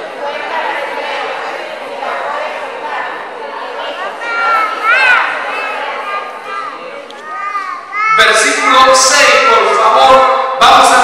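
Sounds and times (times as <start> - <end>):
child calling: 4.2 - 8.4.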